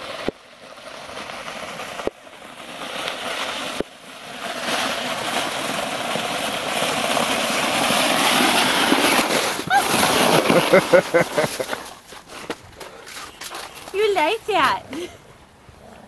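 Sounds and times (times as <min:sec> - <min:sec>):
plastic sled scraping over ice: 0:00.0 - 0:15.1.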